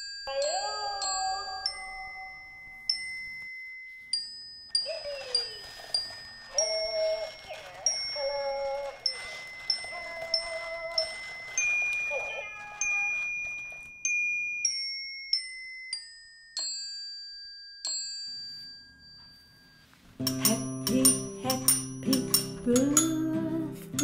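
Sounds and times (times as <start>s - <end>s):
glockenspiel-like notes: 0.0s - 24.0s.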